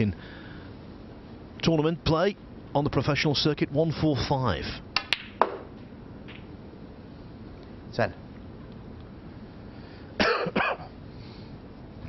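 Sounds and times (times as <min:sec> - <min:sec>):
person coughing: 0:10.2 - 0:10.9.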